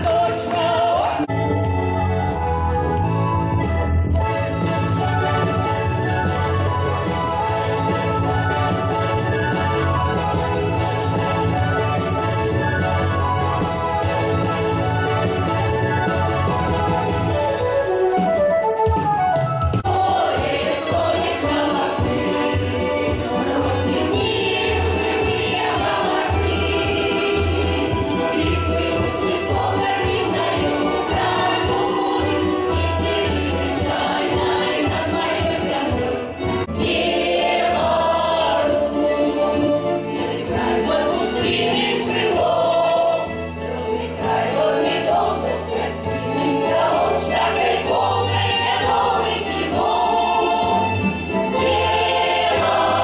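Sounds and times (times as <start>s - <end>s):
instrumental folk dance music: 0.0s - 53.0s
accordion: 1.1s - 53.0s
folk choir singing: 19.8s - 53.0s.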